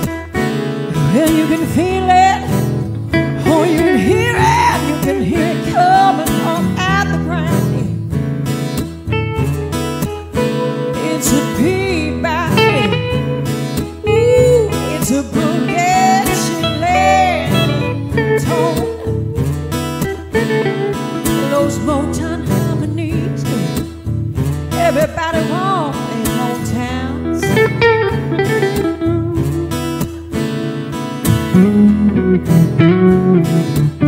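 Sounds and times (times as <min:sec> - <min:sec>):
woman singing: 0:00.0 - 0:08.0, 0:10.5 - 0:24.0, 0:24.7 - 0:30.0
guitar playing: 0:00.0 - 0:34.0.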